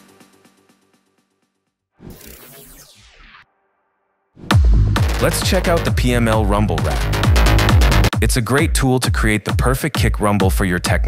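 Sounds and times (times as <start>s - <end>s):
electronic music: 2.0s - 3.5s, 4.4s - 11.0s.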